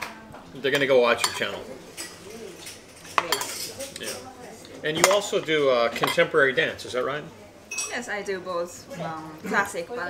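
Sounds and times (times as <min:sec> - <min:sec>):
metal spoon clinking on china: 0:00.8 - 0:04.2.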